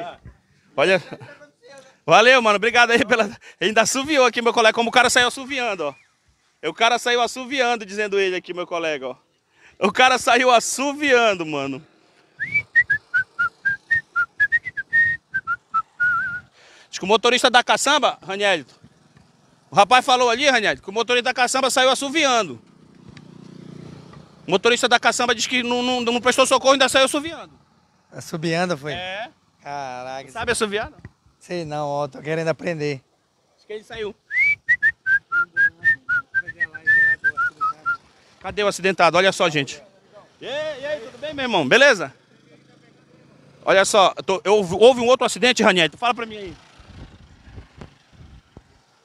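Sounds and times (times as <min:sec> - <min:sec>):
person whistling a tune: 0:12.4 - 0:16.5, 0:34.3 - 0:38.0.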